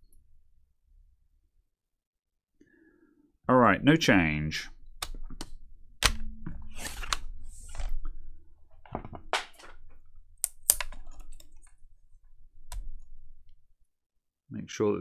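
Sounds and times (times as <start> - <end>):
laptop chassis clicks and knocks: 5.0 - 7.2.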